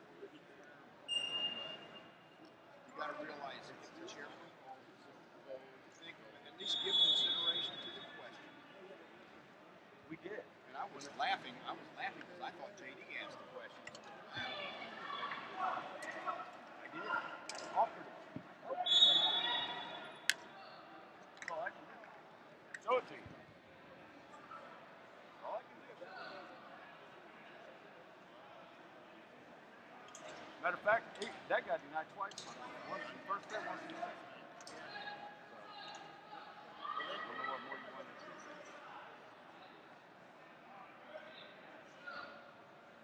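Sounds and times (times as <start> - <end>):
background chatter: 0.0 - 43.0
voices echoing in hall: 0.0 - 43.0
referee's whistle: 1.1 - 2.2, 6.6 - 8.2, 18.8 - 20.3.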